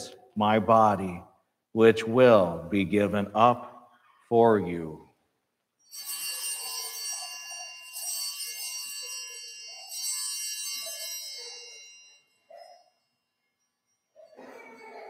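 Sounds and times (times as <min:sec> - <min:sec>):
small hand bells ringing: 0:05.8 - 0:15.0.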